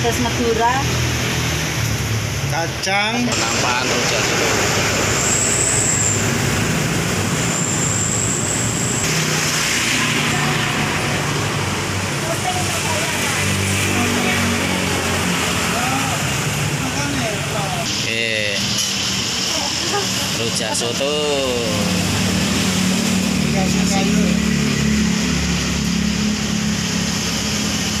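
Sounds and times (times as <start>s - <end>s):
road traffic passing: 0.0s - 28.0s
thin high whistle: 5.2s - 6.5s.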